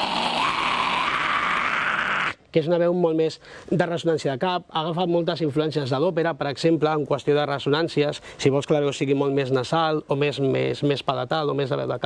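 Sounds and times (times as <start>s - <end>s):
man screaming harshly: 0.0s - 2.4s.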